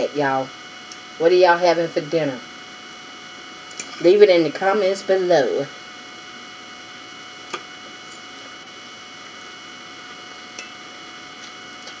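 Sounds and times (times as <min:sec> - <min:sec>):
electrical hum and hiss: 0:00.0 - 0:12.0.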